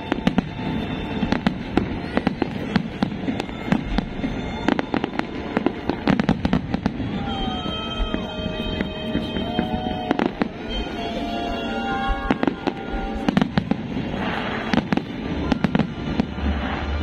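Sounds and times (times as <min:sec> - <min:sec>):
fireworks bursting with bangs: 0:00.0 - 0:17.0
music playing: 0:00.0 - 0:17.0.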